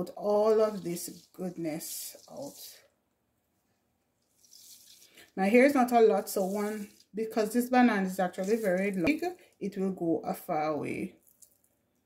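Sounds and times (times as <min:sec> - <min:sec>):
wet squelching through cloth: 0:04.2 - 0:09.3.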